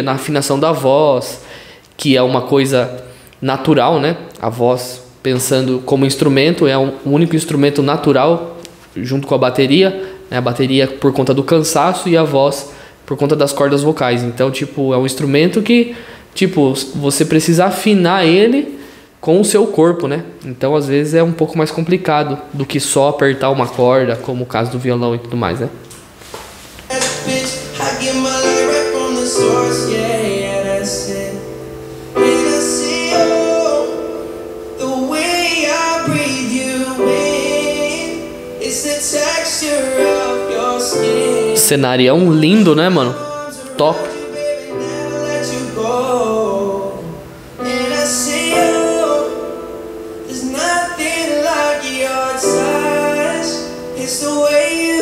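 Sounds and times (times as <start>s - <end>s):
man singing: 26.9s - 49.7s, 50.3s - 55.0s
electric keyboard chords: 26.9s - 55.0s.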